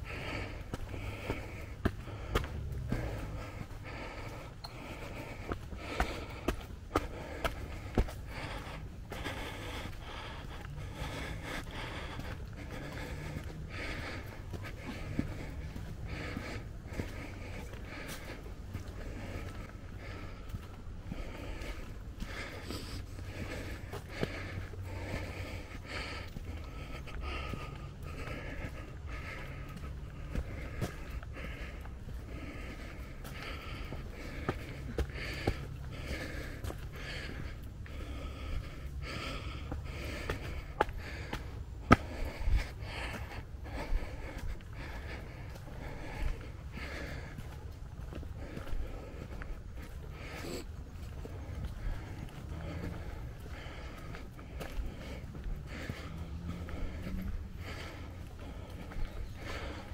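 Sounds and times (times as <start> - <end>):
person breathing hard: 0.0 - 59.9.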